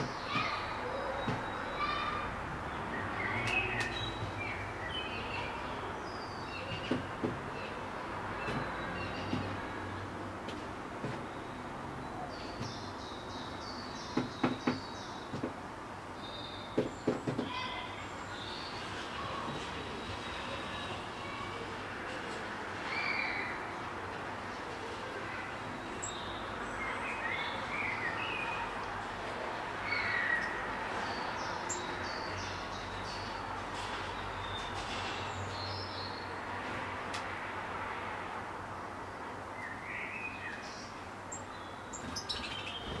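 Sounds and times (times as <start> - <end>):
small birds chirping: 0.0 - 10.1, 11.0 - 21.6, 25.3 - 29.1, 29.8 - 36.5, 39.1 - 43.0
sharp knocks: 14.1 - 15.6, 16.8 - 17.6.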